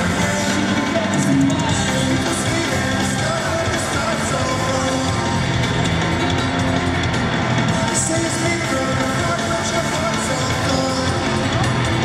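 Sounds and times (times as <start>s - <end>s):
bass guitar: 0.0s - 12.0s
driving drum beat: 0.0s - 12.0s
electric guitar: 0.0s - 12.0s.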